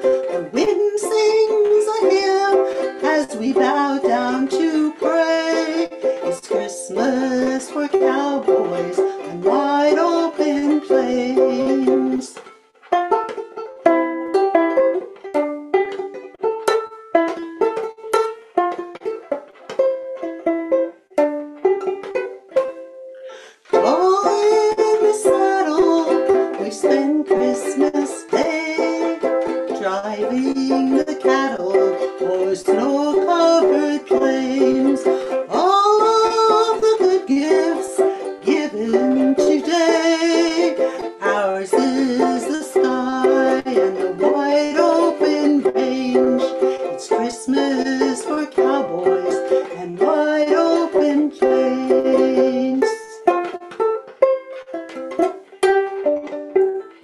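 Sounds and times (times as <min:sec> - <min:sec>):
picked ukulele notes: 0:00.0 - 0:57.0
ukulele strumming: 0:00.0 - 0:57.0.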